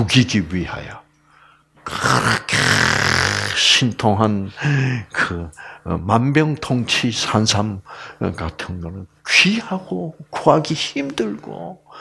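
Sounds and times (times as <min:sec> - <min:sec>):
man's rasping breathy vocal hiss: 0:01.3 - 0:03.8, 0:04.4 - 0:05.9
person speaking: 0:01.8 - 0:12.0.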